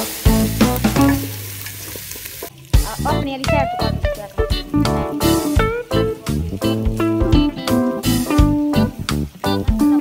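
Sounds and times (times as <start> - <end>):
music: 0.0 - 1.6, 2.5 - 10.0
meat sizzling in a pot: 0.0 - 10.0.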